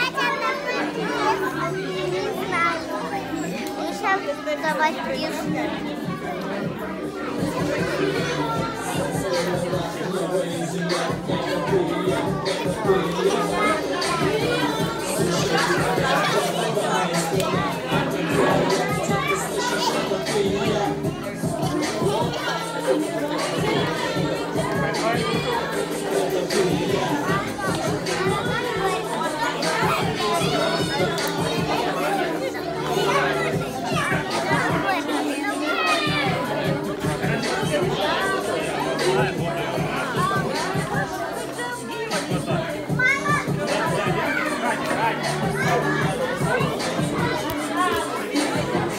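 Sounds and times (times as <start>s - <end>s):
adults talking: 0.0s - 48.9s
children playing and chattering: 0.0s - 48.9s.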